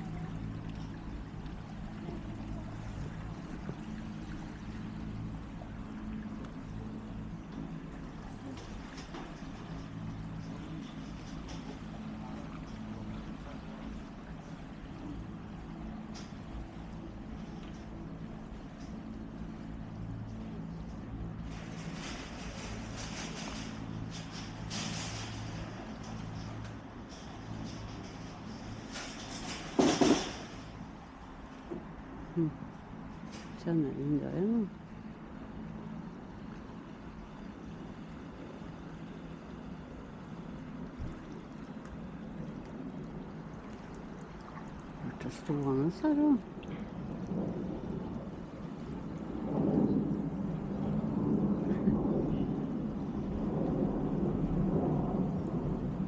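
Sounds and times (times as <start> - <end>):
low motor hum: 0.0 - 56.0.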